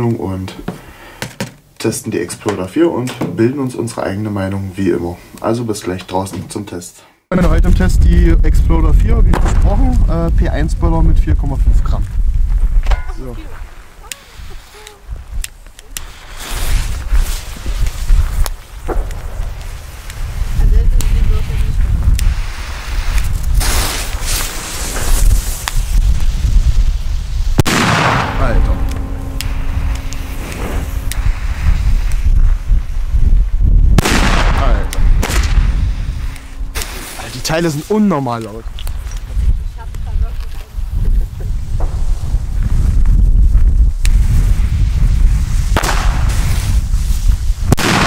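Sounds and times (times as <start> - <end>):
firecrackers banging: 7.6 - 40.4, 41.2 - 48.0.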